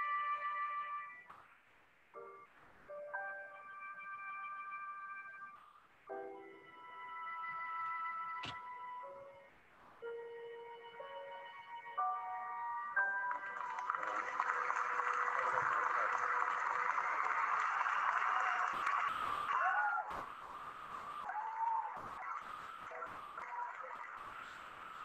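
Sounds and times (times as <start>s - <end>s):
soft music: 0.0s - 1.3s, 2.2s - 17.8s
audience applauding: 13.1s - 25.0s.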